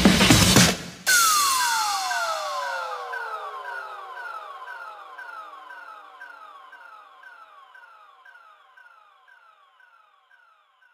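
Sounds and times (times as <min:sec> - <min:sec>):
electronic siren-like sweep: 0:01.1 - 0:10.8.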